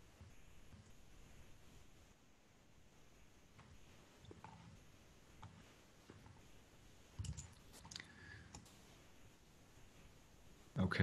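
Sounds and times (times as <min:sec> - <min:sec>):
faint computer clicks: 0:07.2 - 0:08.8.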